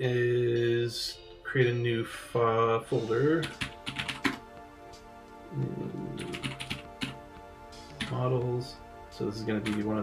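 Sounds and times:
soft background music: 0.0 - 10.0
computer keyboard typing: 3.4 - 4.4, 6.2 - 7.2, 8.0 - 8.2.

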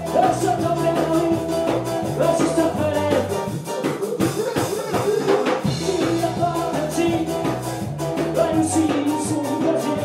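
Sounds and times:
bass guitar: 0.0 - 10.0
drum kit beat: 0.0 - 10.0
electric guitar: 0.0 - 10.0
keyboard: 0.0 - 10.0.

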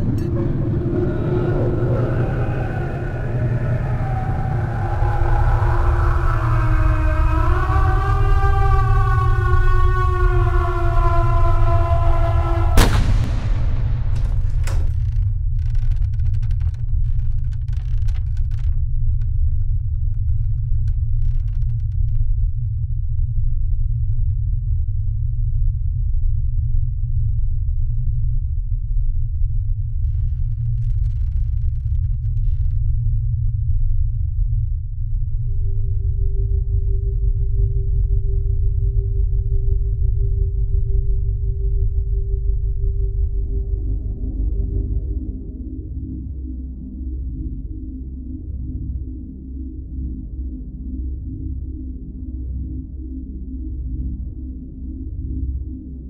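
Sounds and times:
deep low rumble drone: 0.0 - 56.0
sharp hit: 12.8 - 15.1.

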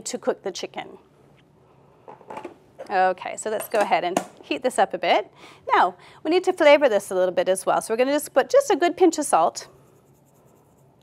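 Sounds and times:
woman speaking: 0.0 - 1.0, 2.8 - 9.7.

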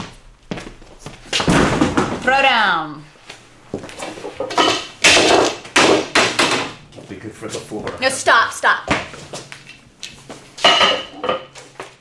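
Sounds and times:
object slammed against floor: 1.4 - 2.2.

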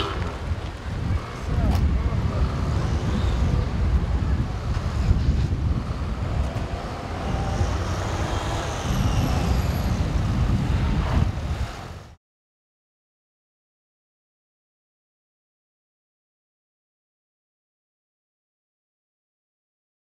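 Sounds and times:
traffic low rumble: 0.0 - 12.2.

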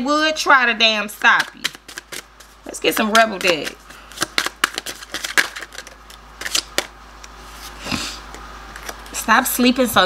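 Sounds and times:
cards being shuffled: 1.2 - 6.9, 8.7 - 9.2.

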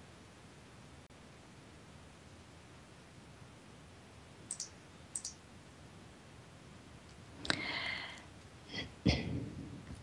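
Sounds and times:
low steady hiss: 0.0 - 10.0
computer mouse clicks: 4.5 - 5.4.

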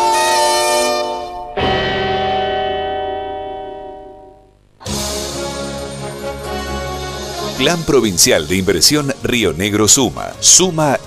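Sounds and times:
bell-like chime ringing: 1.2 - 4.5.

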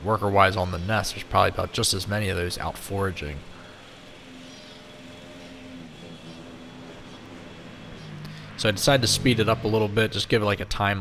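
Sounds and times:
hornets buzzing: 0.0 - 11.0.

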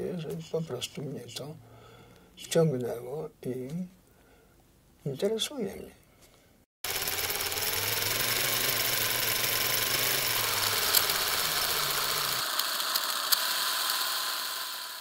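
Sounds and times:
film projector whirring and clattering: 6.8 - 15.0
low hum: 6.9 - 12.5.

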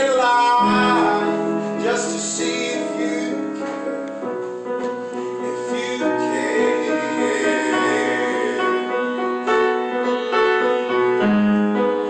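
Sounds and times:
slow piano: 0.0 - 12.0.

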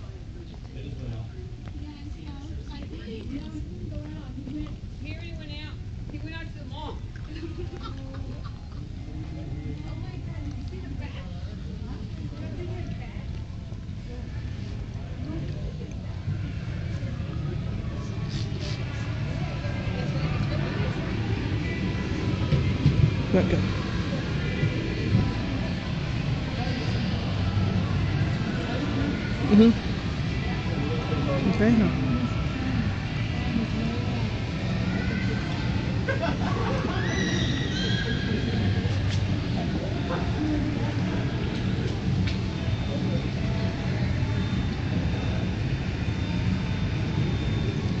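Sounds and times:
indoor mall background noise: 0.0 - 48.0.

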